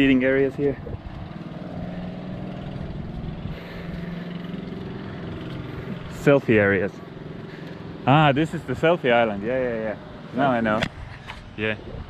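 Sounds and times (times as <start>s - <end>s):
engine idling: 0.0s - 10.8s.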